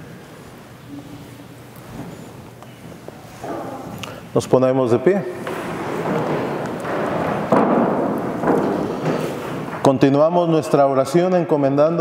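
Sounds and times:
people standing up rustling: 0.3 - 4.3, 5.3 - 10.2
loud bump: 5.4 - 10.0.

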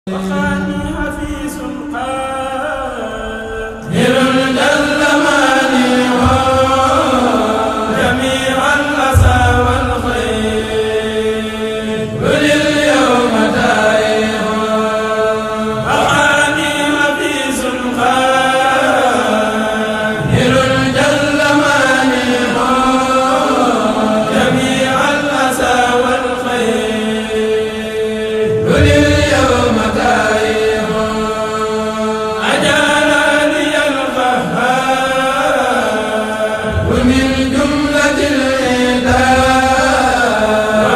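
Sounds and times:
men chanting through microphones: 0.1 - 40.9.

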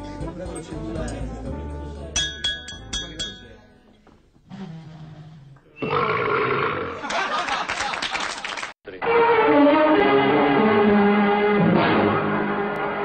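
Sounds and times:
wine glass tapped ringing: 2.2 - 3.6
people clapping: 7.0 - 8.8.

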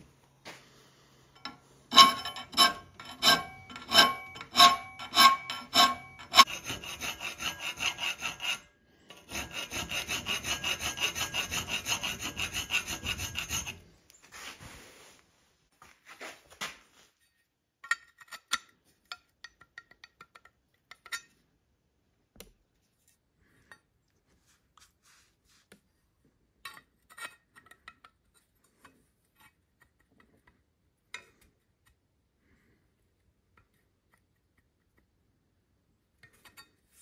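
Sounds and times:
round file rasping on steel: 1.4 - 13.9.

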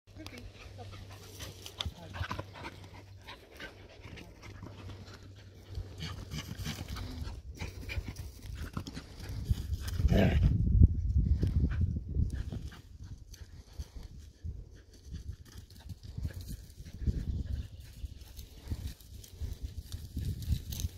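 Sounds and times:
dogs panting: 0.2 - 10.1, 11.4 - 20.1.

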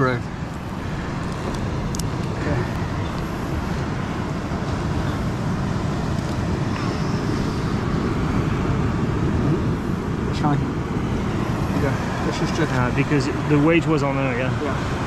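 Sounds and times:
wind and surf rushing: 0.0 - 15.0.

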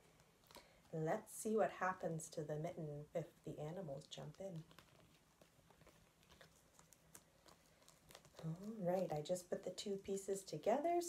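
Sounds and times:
woman speaking: 0.9 - 4.7, 8.4 - 11.0.

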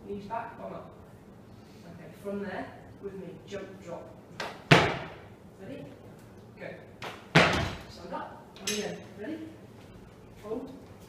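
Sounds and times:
feet thudding on gym floor: 7.3 - 7.9.

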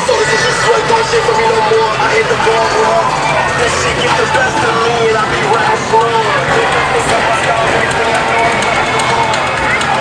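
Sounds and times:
babble of voices: 0.0 - 10.0.

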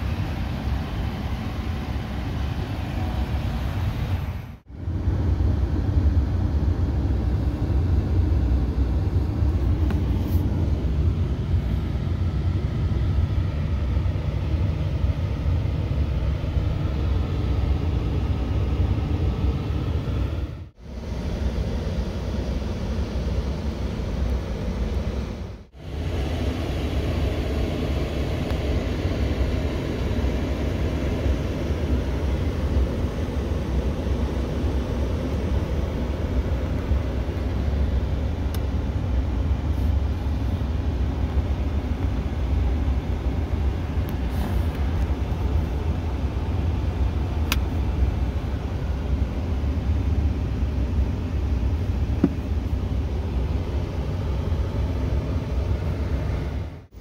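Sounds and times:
truck cab rumble and hiss: 0.0 - 57.0.

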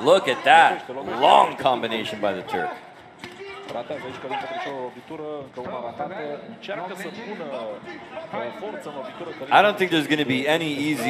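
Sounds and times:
commentary: 0.0 - 11.0
voices talking and calling out: 0.0 - 11.0.

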